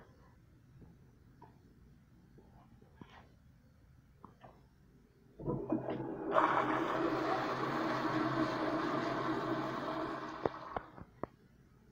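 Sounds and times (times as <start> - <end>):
toilet flushing: 5.4 - 10.9.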